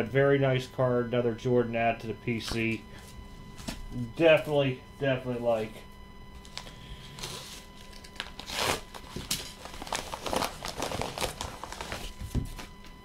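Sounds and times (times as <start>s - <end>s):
padded envelope rustling: 6.4s - 12.8s
bubble wrap crinkling: 6.4s - 12.9s.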